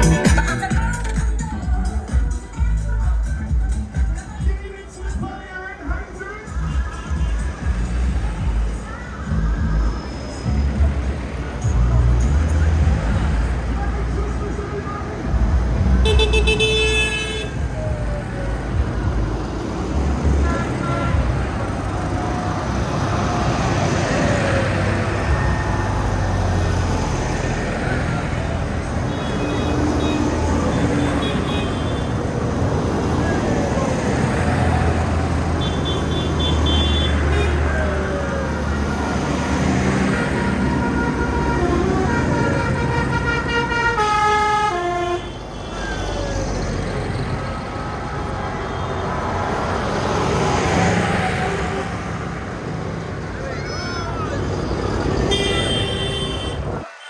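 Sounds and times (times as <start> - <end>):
horns tooting: 0.0 - 1.4, 15.8 - 17.9, 20.0 - 26.1, 27.5 - 47.1, 53.7 - 57.0
tractors driving past: 0.0 - 2.2, 3.7 - 57.0.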